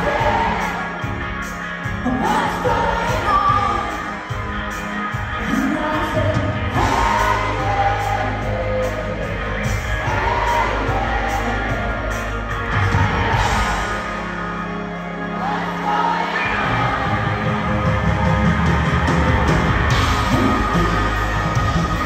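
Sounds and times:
crowd yelling: 0.0s - 22.0s
live band playing: 0.0s - 22.0s
person singing: 2.0s - 4.3s.

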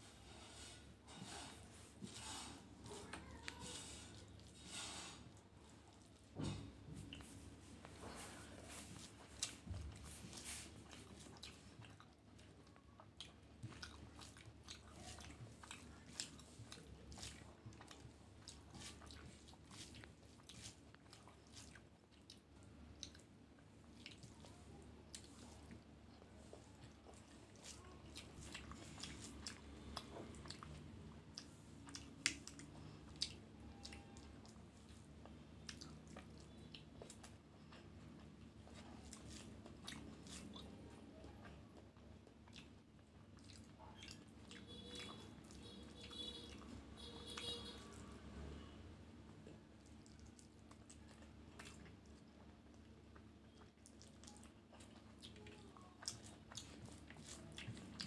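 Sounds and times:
wet chewing clicks and smacks: 8.9s - 47.9s, 49.5s - 58.0s.

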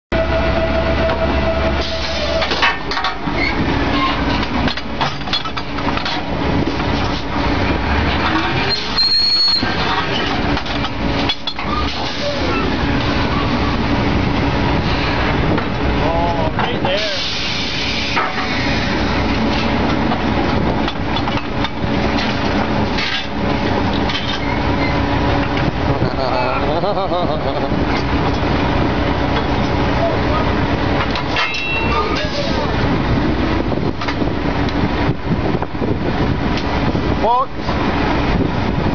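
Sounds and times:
drilling rig engine drone: 0.1s - 38.9s
metal pipe clanks: 9.8s - 12.0s, 31.0s - 32.5s.

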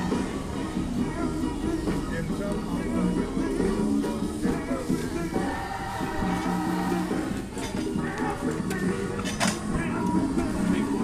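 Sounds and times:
choir singing gospel: 2.6s - 7.5s.

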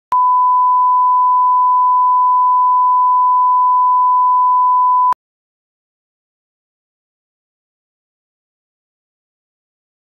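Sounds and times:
steady test tone beep: 0.1s - 5.2s.

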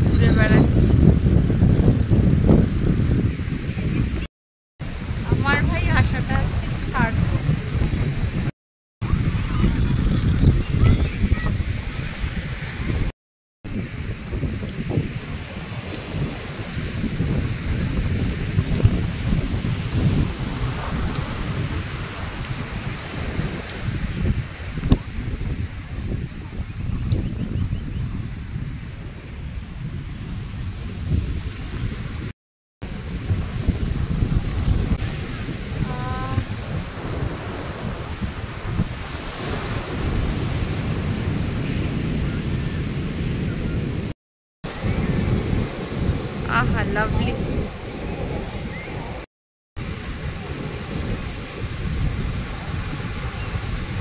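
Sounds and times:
wind buffeting microphone: 0.0s - 54.0s
sea surf breaking on beach: 4.8s - 13.1s, 13.7s - 26.7s, 28.3s - 54.0s.

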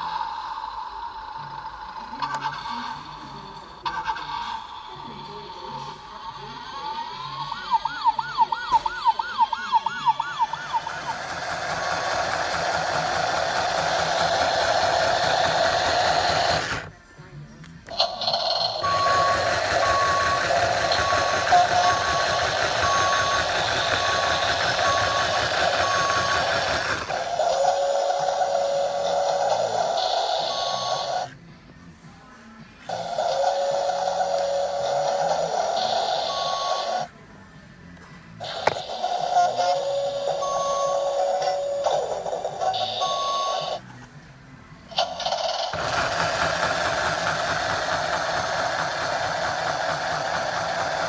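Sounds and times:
toy electronic engine noise: 0.0s - 16.9s, 17.8s - 31.4s, 32.9s - 37.1s, 38.4s - 43.8s, 44.9s - 51.0s
toy warbling siren: 5.8s - 16.9s, 18.0s - 31.3s, 32.9s - 37.1s, 38.4s - 43.8s
reversing beeps: 18.8s - 31.2s, 35.2s - 37.1s, 39.2s - 42.0s, 42.6s - 43.8s.

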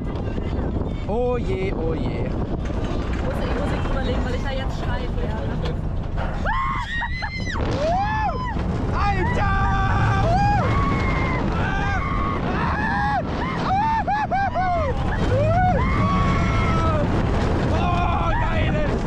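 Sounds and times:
roller coaster train rumble: 0.0s - 19.0s
riders screaming and whooping: 6.4s - 19.0s.

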